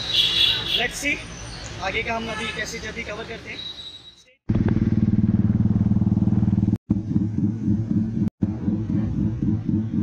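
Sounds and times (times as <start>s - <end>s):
motorcycle engine running: 4.5s - 10.0s.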